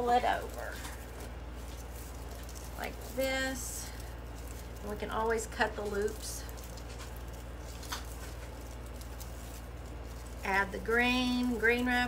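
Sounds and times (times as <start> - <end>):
faint raffia rustling: 0.0 - 12.0
steady low hum: 0.0 - 12.0.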